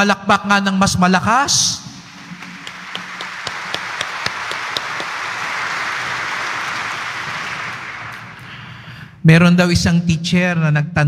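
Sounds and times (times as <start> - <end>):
sharp close claps: 1.8 - 8.8
congregation applauding: 1.8 - 9.1.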